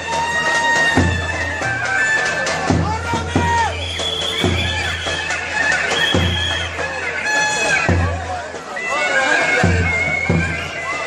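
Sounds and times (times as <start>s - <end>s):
crowd voices and shouts: 0.0s - 11.0s.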